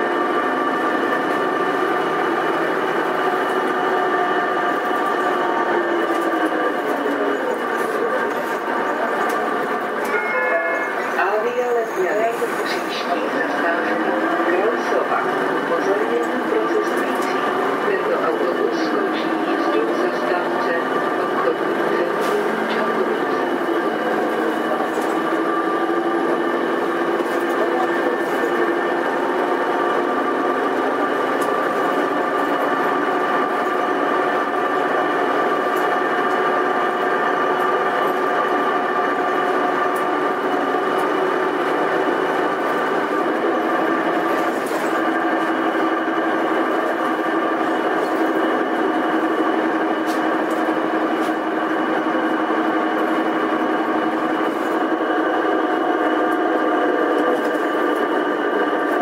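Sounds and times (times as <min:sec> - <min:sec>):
bus engine whine: 0:00.0 - 0:59.0.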